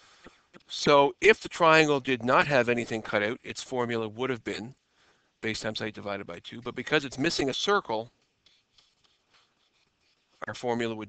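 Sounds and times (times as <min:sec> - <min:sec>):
stylus scratching on a screen: 0:08.3 - 0:10.8.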